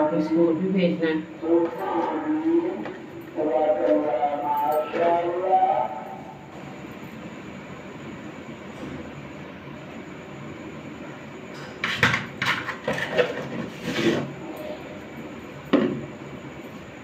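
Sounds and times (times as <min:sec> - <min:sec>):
person's voice: 0:00.0 - 0:06.2.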